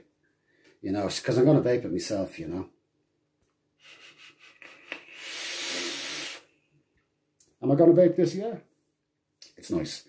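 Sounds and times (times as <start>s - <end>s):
loud hissing breath: 3.8s - 6.6s.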